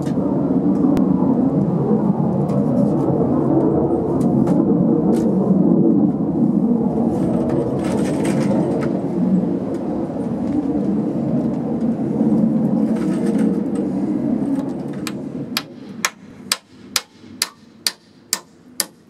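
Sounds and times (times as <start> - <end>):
low rumble: 0.0 - 18.8
hammer striking nail into wood: 15.6 - 19.0.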